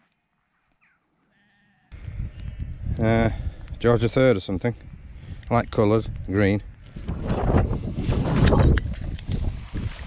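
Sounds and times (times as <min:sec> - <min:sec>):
wind rumbling on microphone: 0:01.9 - 0:10.0.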